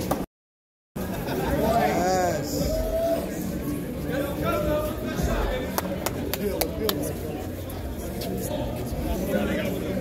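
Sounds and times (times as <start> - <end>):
people's voices: 1.0 - 10.0.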